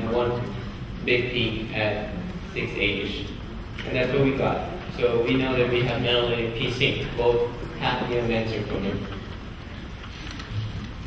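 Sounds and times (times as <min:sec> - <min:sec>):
room tone hiss: 0:00.0 - 0:11.0.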